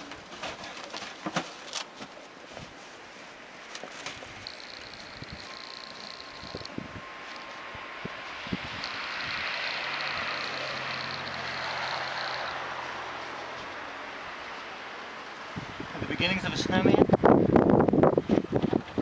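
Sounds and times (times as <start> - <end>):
vehicle passing by: 4.4 - 16.2.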